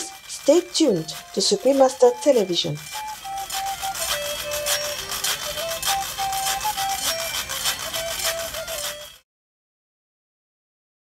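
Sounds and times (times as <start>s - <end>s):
carrot flute melody: 0.0s - 9.2s
quick even clicking rhythm: 0.0s - 9.2s.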